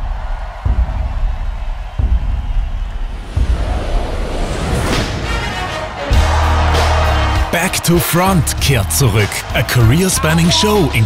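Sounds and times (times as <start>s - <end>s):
heavy bass drum beats: 0.0s - 4.4s, 6.1s - 11.0s
sustained wash of sound: 3.2s - 5.7s.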